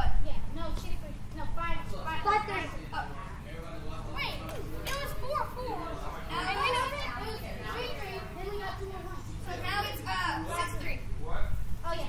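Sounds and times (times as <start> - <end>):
children calling out and chattering: 0.0 - 11.2.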